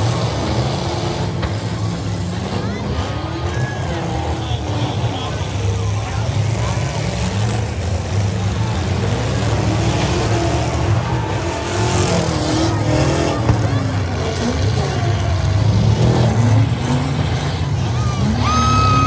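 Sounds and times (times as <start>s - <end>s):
crowd voices: 0.0s - 19.0s
truck engines rumbling: 0.0s - 19.0s.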